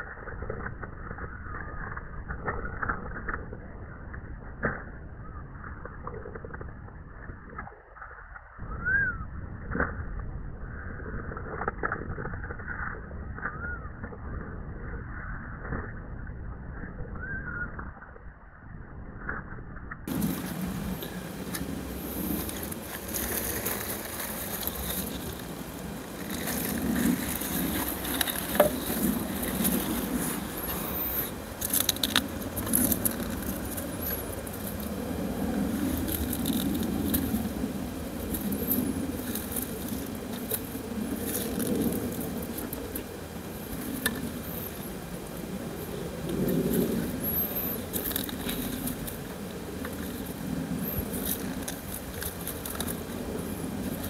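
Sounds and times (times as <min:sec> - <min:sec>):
steady low rumble: 0:00.0 - 0:54.0
soil crackling: 0:20.0 - 0:54.0
stalks rustling: 0:20.1 - 0:37.5.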